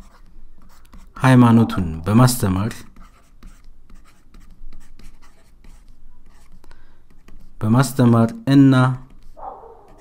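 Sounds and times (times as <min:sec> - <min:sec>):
stylus scratching on tablet: 0:00.0 - 0:08.0, 0:09.1 - 0:10.0.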